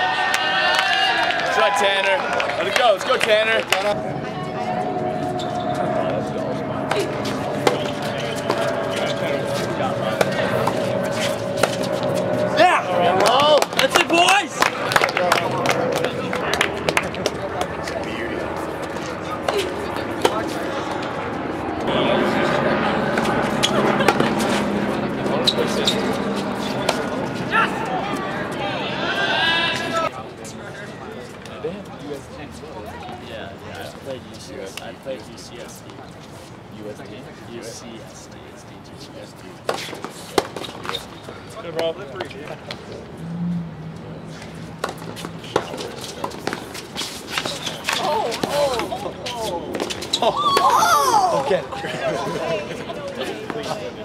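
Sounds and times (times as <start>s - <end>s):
spectators' voices and shouts: 0.0s - 30.2s, 47.8s - 54.0s
long falling held tone: 4.0s - 13.6s
tennis balls struck by rackets: 6.9s - 12.2s.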